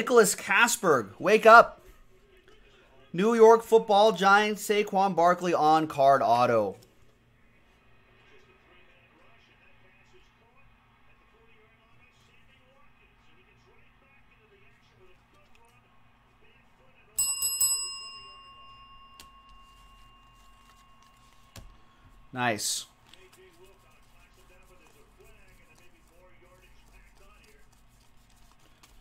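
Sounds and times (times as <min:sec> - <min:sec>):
small metal bell ringing: 0:17.2 - 0:21.4.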